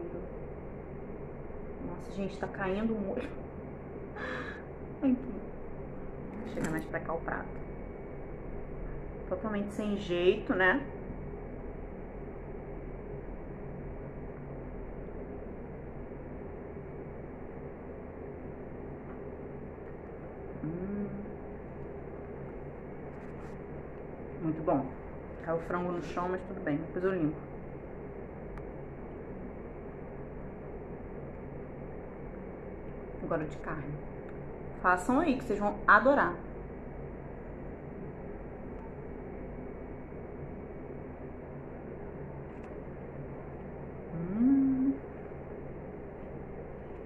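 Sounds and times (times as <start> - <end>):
background hum and hiss: 0.0 - 47.0.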